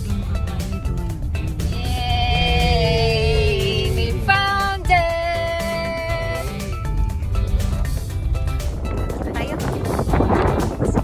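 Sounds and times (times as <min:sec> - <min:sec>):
car driving rumble: 0:00.0 - 0:11.0
music playing: 0:00.0 - 0:11.0.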